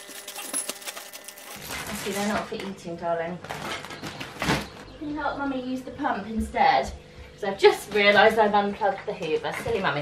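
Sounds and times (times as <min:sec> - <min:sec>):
plastic bag crinkling: 0:00.0 - 0:02.7.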